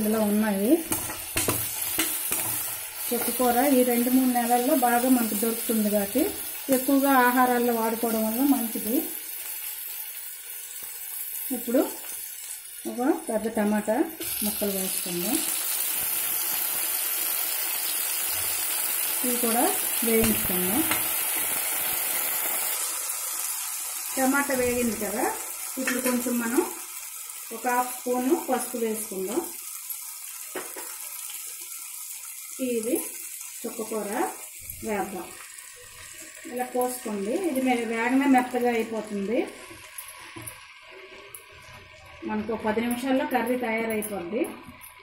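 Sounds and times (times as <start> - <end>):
onions sizzling in hot oil: 0.0 - 45.0.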